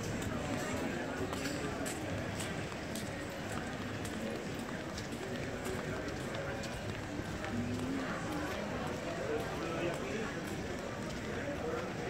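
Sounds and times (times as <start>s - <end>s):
footsteps on paved tiles: 0.0s - 12.0s
indistinct talk: 0.0s - 12.0s.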